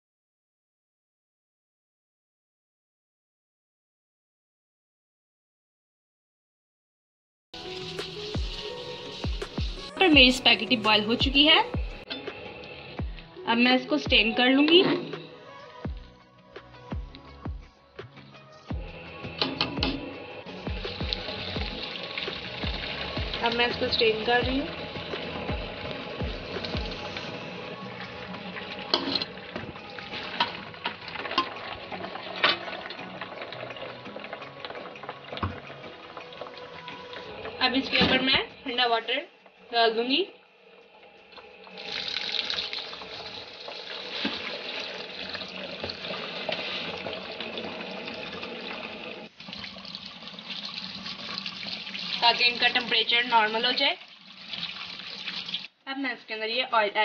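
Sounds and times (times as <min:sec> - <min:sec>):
water splashing through a colander: 0:20.6 - 0:38.5, 0:41.0 - 0:55.8
water drips: 0:20.7 - 0:27.4.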